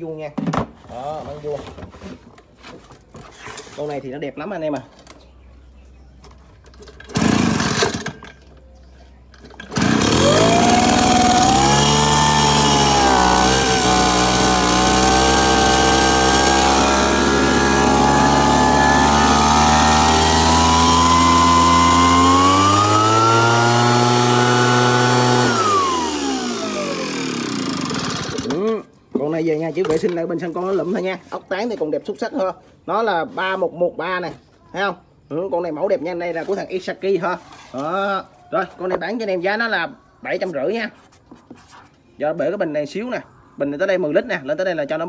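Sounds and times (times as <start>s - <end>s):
small two-stroke engine running: 7.0s - 8.2s, 9.5s - 28.8s.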